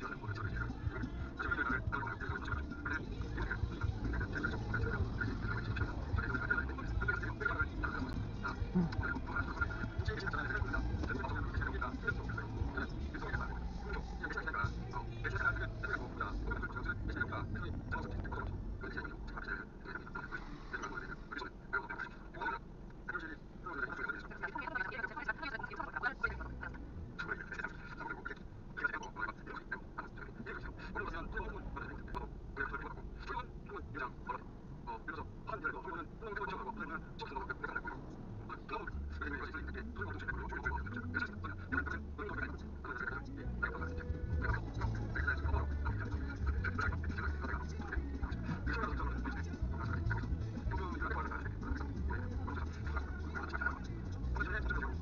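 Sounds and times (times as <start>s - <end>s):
car road and engine rumble: 0.0s - 55.0s
voice-like sound: 0.0s - 55.0s.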